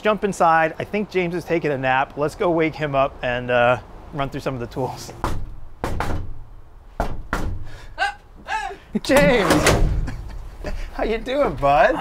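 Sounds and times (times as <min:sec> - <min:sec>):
hand banging on metal door: 0:05.2 - 0:06.4, 0:07.0 - 0:07.7, 0:09.1 - 0:10.4.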